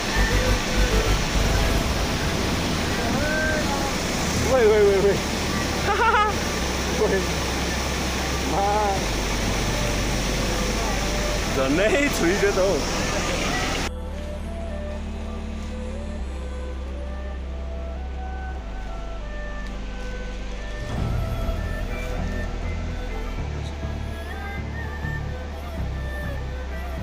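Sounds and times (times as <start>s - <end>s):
rushing stream water: 0.0s - 14.6s
background music with bass: 0.0s - 27.0s.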